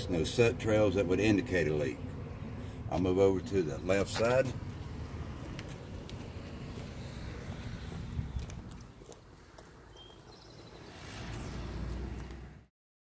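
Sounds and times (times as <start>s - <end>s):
footsteps on pavement: 2.9s - 12.6s
wind noise on microphone: 7.2s - 9.0s.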